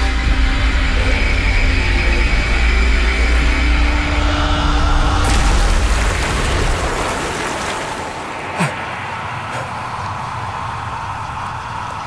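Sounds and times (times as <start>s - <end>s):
fizzing churning water hiss: 5.3s - 12.0s.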